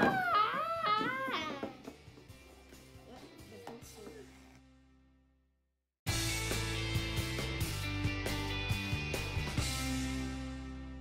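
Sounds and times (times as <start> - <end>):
child's high-pitched play cries: 0.0 - 1.8
quiet background music: 0.0 - 5.2.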